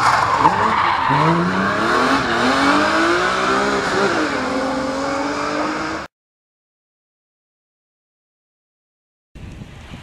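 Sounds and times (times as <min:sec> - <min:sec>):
rally car engine revving: 0:00.0 - 0:06.1
tyre and road noise: 0:00.0 - 0:06.1.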